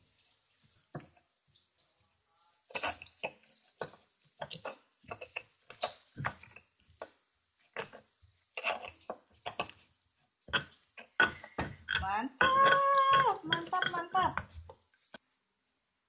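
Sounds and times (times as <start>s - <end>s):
stone pestle pounding in mortar: 11.2s - 14.5s.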